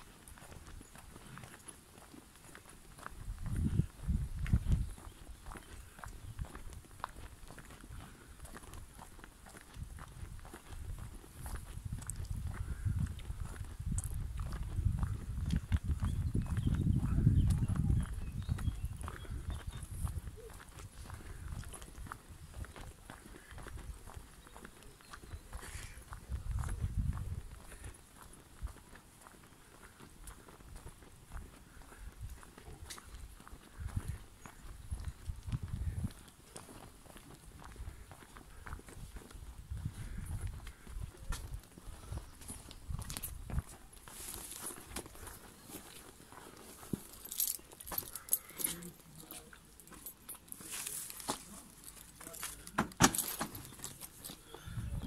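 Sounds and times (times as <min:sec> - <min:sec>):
footsteps on pavement: 0:00.0 - 0:55.0.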